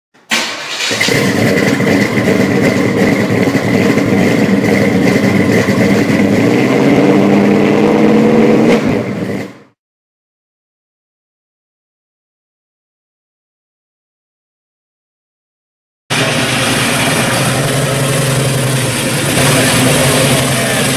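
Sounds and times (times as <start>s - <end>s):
rough car engine running: 0.6s - 9.7s, 16.1s - 20.9s.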